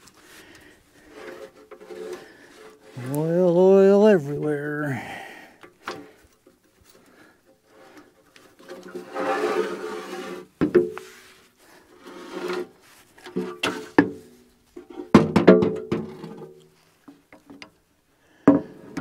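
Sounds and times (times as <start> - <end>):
metal scraping against metal: 1.0 - 3.3, 7.7 - 10.5.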